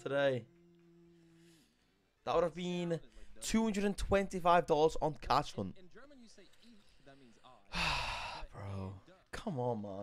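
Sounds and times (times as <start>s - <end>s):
man sighing heavily: 7.7s - 8.8s.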